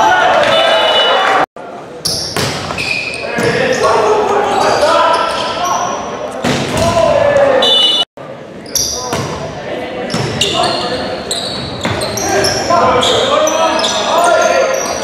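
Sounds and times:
players shouting: 0.0 - 1.5, 3.2 - 8.1
sneakers squeaking on hardwood: 2.0 - 6.8, 10.0 - 15.0.

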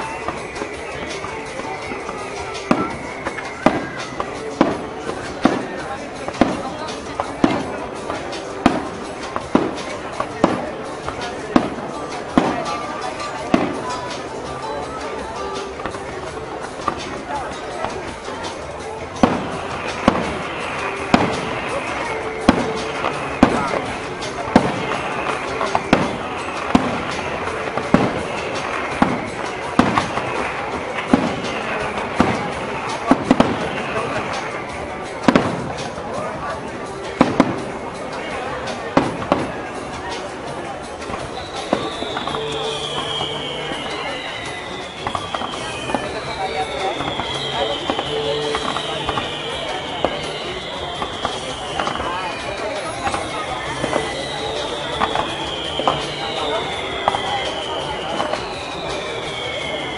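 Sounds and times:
fireworks bursting: 0.0 - 59.9
steady background din: 0.0 - 59.9.

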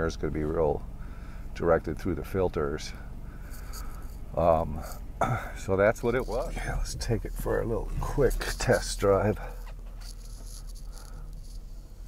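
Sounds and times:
car engine idling: 0.0 - 12.0
light rustling: 3.4 - 5.0, 6.0 - 12.0.

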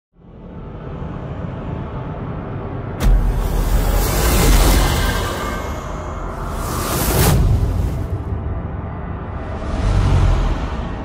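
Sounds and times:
low rumbling drone: 0.1 - 11.0
heavy low boom: 2.9 - 11.0
deep impact hit: 3.0 - 8.8.

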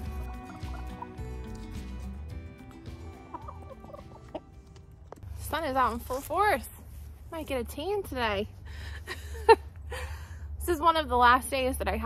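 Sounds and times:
background music: 0.0 - 5.2
hens clucking: 0.2 - 1.2, 2.8 - 4.9.

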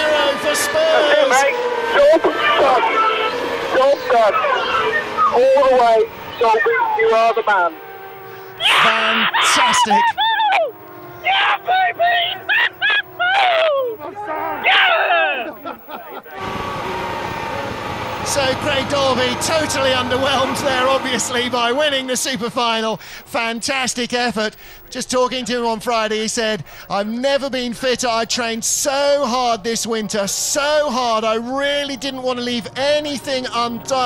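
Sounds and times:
man shouting and cheering: 0.0 - 7.7, 8.6 - 15.6
race car engine drone: 0.0 - 34.0
person shouting in celebration: 8.6 - 15.6.

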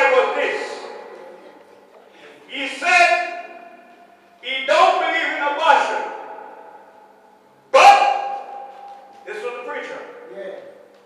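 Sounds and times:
man shouting into microphone: 0.0 - 1.1, 2.5 - 3.8, 4.4 - 6.7, 7.7 - 8.7.

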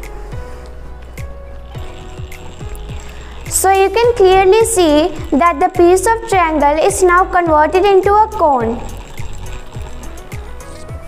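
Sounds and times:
background music with deep beat: 0.0 - 11.0.

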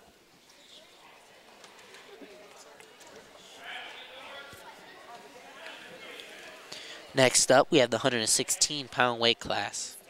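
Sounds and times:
faint chatter of voices: 0.0 - 7.2.

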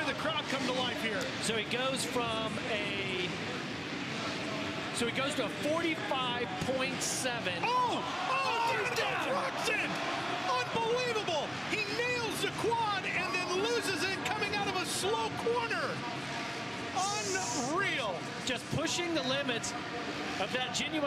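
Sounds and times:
crowd noise: 0.0 - 21.0.

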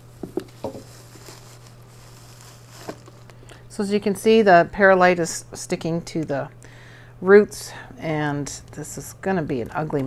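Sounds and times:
radishes pulled from growing medium: 0.1 - 3.4.

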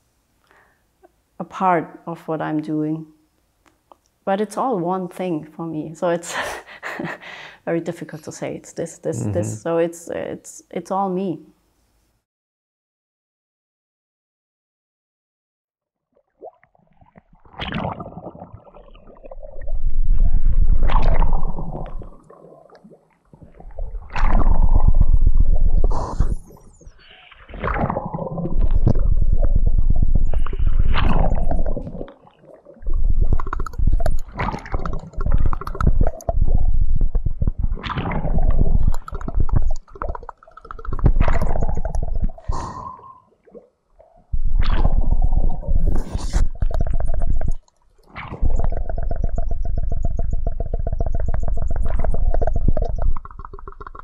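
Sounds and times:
water gurgling and bubbling: 16.3 - 54.0.

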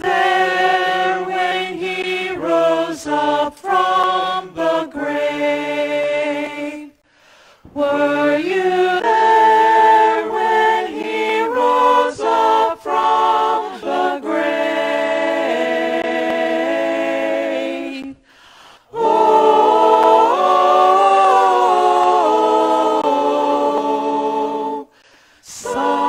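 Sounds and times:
vocal ensemble singing in harmony: 0.0 - 26.0.

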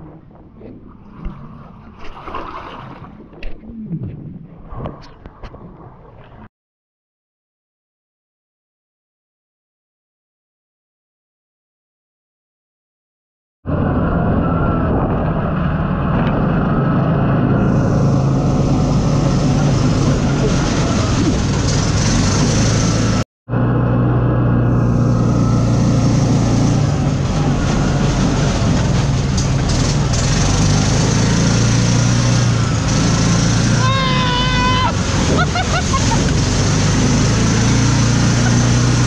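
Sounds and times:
wind and tyre noise: 0.0 - 6.5, 13.7 - 39.0
buggy engine running: 13.7 - 39.0.

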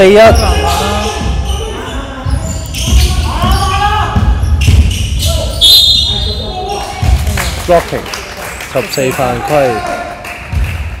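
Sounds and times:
referee's whistle: 4.6 - 6.4.

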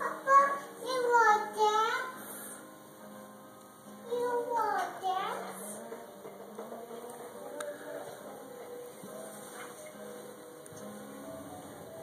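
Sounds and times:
child singing wordless tune: 0.0 - 2.6, 4.0 - 6.0.

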